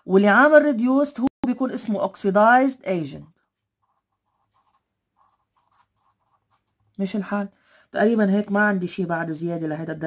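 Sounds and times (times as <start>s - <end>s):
marker pen writing on paper: 3.5s - 7.0s.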